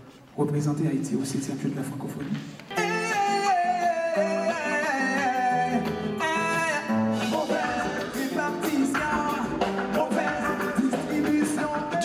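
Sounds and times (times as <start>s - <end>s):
drums: 2.0s - 12.0s
electric guitar: 2.2s - 12.0s
man singing: 2.7s - 12.0s.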